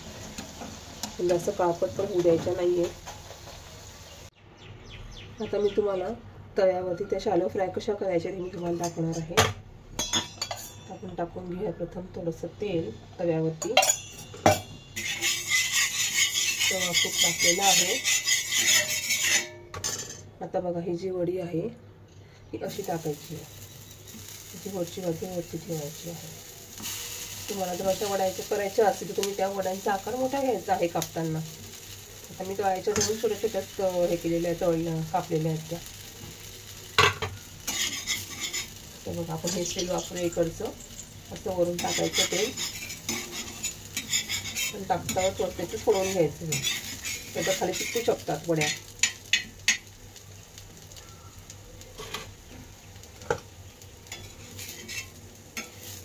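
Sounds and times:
oil sizzling: 0.0 - 4.4, 12.3 - 20.1, 22.6 - 56.0
metal spatula scraping iron pan: 13.7 - 20.2, 37.0 - 40.8, 41.4 - 49.9, 54.1 - 56.0
hand rubbing oil on iron griddle: 15.0 - 19.4.

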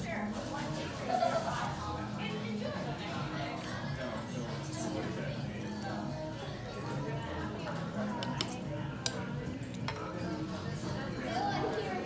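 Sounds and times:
background music: 0.0 - 12.0
murmur of voices: 0.0 - 12.0.

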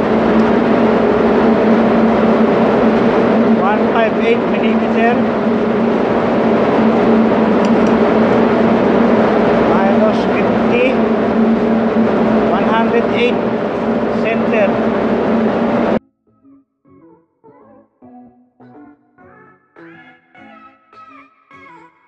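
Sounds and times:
diesel generator humming: 0.0 - 16.0.

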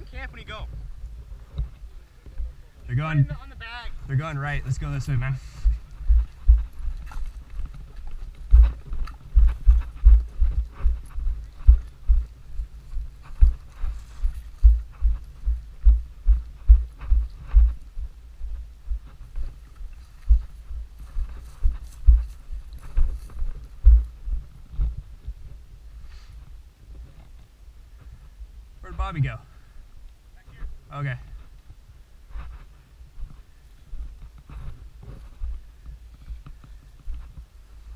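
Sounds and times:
dry vegetation rustling: 0.0 - 37.9
running footfalls: 4.8 - 25.4.

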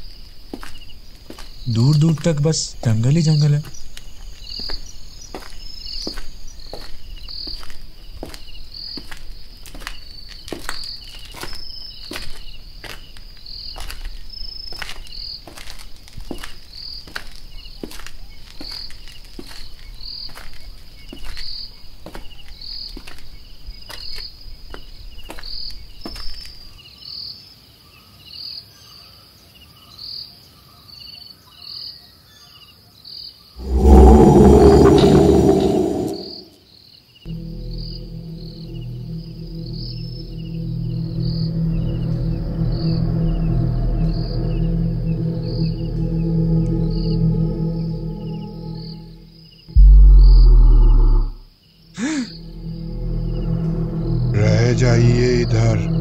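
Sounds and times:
crickets chirping: 0.0 - 26.7, 33.6 - 36.6, 37.3 - 56.0
loud low boom: 33.6 - 36.5, 37.3 - 51.4, 52.3 - 56.0.

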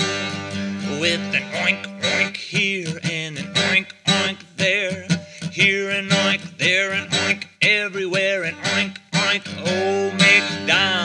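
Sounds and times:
man singing: 0.0 - 11.0
strummed acoustic guitar: 0.0 - 11.0.

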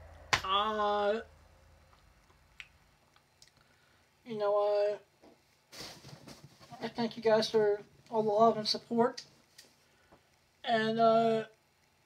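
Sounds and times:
person speaking: 0.4 - 1.3, 4.2 - 5.1, 6.6 - 9.3.

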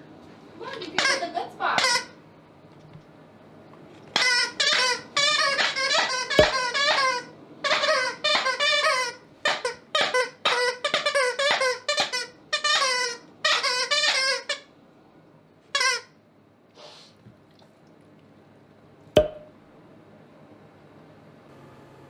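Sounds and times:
squeaky toy squeaking: 1.0 - 2.1, 4.2 - 14.6, 15.8 - 16.1
dog chewing toy: 4.2 - 14.3
sharp knock: 6.4 - 6.6, 19.2 - 19.5.

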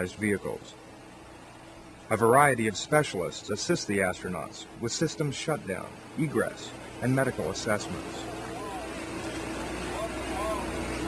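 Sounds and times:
heavy vehicle engines humming: 0.0 - 11.0
steady droning tone: 0.0 - 11.0
faint voices: 2.1 - 11.0.

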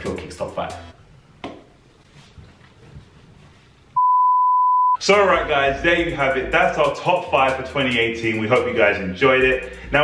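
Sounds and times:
high-pitched electronic beep: 4.0 - 5.0.

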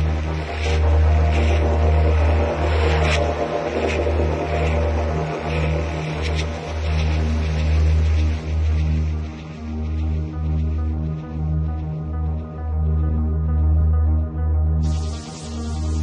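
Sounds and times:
deep bass drone: 0.0 - 16.0.

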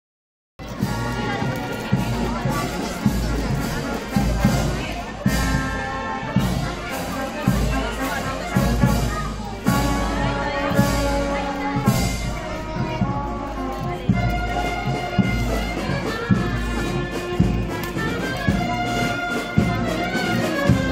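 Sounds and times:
crowd voices: 0.6 - 20.9
marching band playing: 0.6 - 20.9
steady drumbeat: 0.6 - 20.9.

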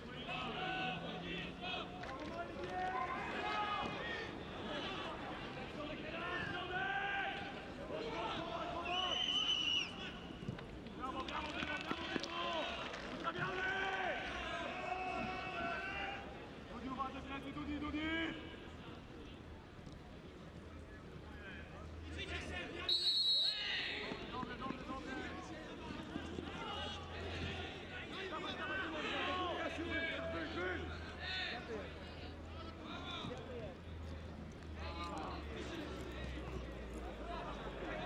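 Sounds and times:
football commentator speaking: 0.0 - 9.1, 21.3 - 33.8
stadium crowd noise: 0.0 - 38.0
referee's whistle blast: 22.9 - 23.7.

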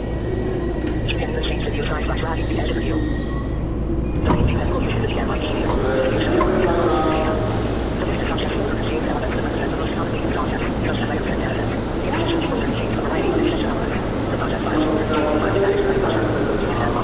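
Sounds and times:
indistinct voices: 0.0 - 17.0
steady low hum: 0.0 - 17.0.

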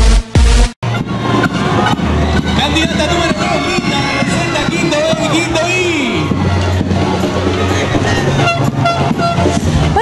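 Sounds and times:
loud horn-like tones: 0.8 - 10.0.

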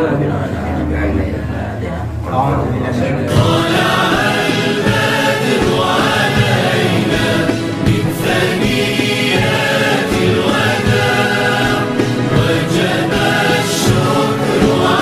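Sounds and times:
choir singing with music: 3.3 - 15.0.

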